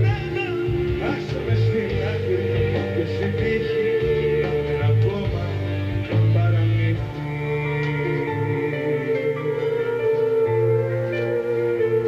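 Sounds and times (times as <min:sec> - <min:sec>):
electric guitar: 0:00.0 - 0:12.0
held bass notes: 0:00.0 - 0:12.0
live pop-rock band: 0:00.0 - 0:12.0.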